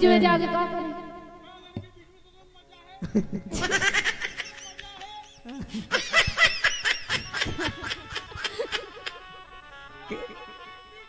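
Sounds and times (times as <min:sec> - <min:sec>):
person laughing: 0:03.0 - 0:11.0.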